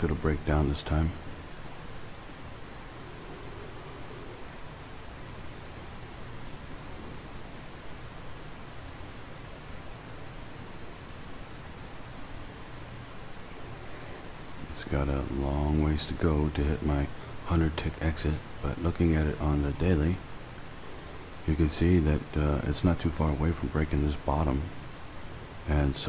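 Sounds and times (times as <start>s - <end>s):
room noise hiss: 0.0s - 26.0s.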